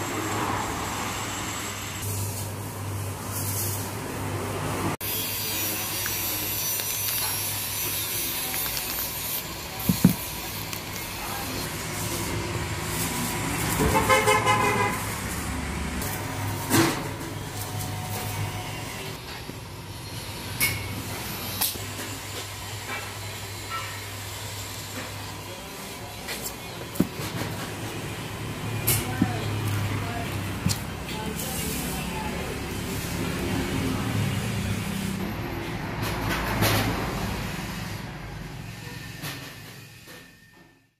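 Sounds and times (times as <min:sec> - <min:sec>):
traffic running steadily: 0:00.0 - 0:40.7
plastic packaging being handled: 0:05.9 - 0:12.0
vehicle horn: 0:13.7 - 0:15.3.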